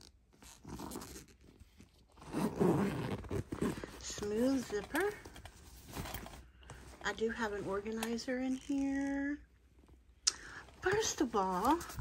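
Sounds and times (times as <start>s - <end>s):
fabric handbag rustling: 0.4s - 9.4s, 10.8s - 12.0s.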